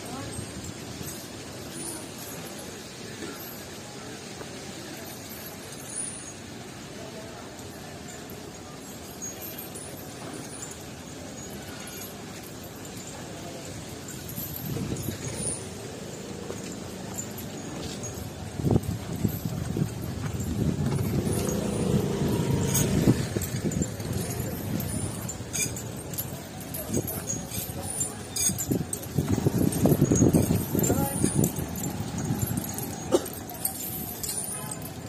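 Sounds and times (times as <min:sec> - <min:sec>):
chains clinking and knocking: 0:00.0 - 0:35.0
road traffic: 0:00.0 - 0:35.0.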